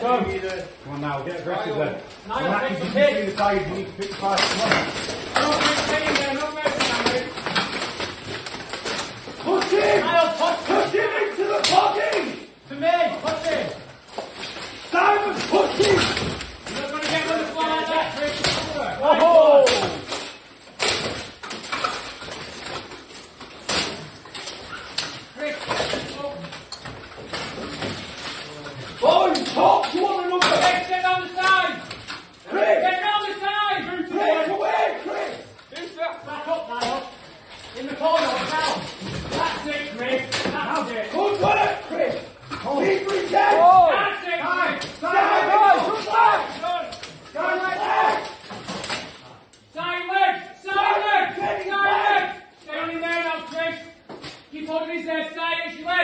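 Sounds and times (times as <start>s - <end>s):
plate armour clanking: 2.4s - 12.4s, 13.1s - 32.3s, 35.8s - 49.2s
people shouting: 9.4s - 12.5s, 14.9s - 20.2s, 29.0s - 35.6s, 41.2s - 48.5s, 49.8s - 53.0s.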